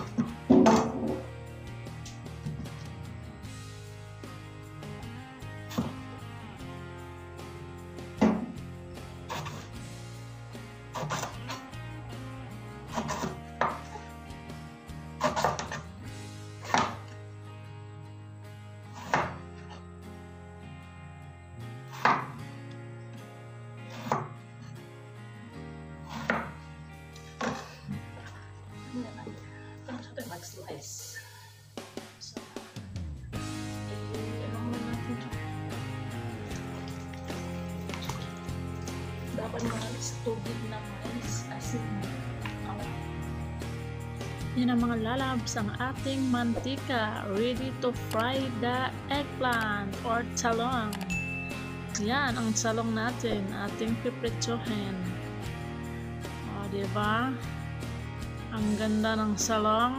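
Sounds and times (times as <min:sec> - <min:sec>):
background music with held notes: 0:00.0 - 0:59.9
knife chopping on cutting board: 0:11.0 - 0:11.3, 0:12.9 - 0:13.9, 0:15.2 - 0:15.8, 0:16.6 - 0:17.0, 0:19.0 - 0:19.4, 0:21.9 - 0:22.4, 0:23.9 - 0:24.4, 0:26.1 - 0:26.6.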